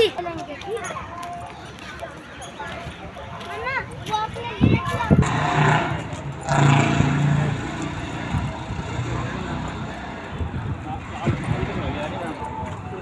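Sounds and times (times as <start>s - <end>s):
people talking indistinctly: 0.0s - 13.0s
steady outdoor din: 0.0s - 13.0s.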